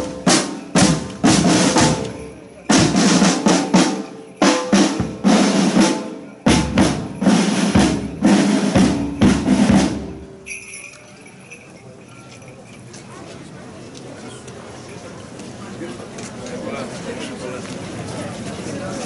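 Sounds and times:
marching snare and bass drums: 0:00.0 - 0:10.5
procession crowd: 0:00.0 - 0:19.0.

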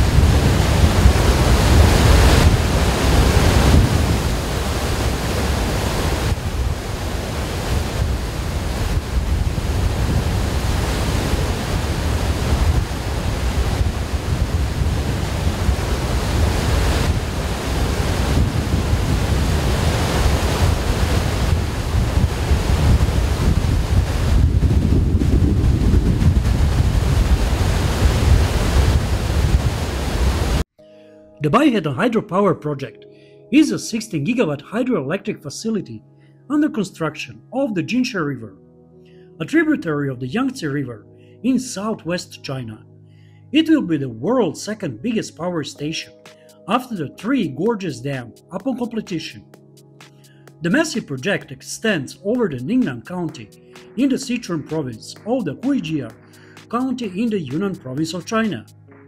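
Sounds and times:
water rushing from dam spillway: 0:00.0 - 0:30.6.

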